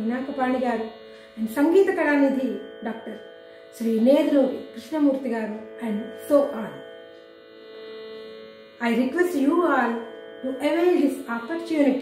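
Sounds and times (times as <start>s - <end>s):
woman's voice: 0.0s - 3.2s, 3.8s - 6.8s, 8.8s - 12.0s
steady drone with overtones: 0.0s - 12.0s.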